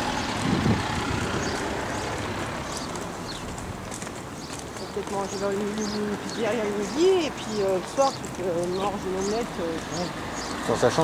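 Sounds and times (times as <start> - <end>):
vehicle rushing by: 0.0 - 4.8.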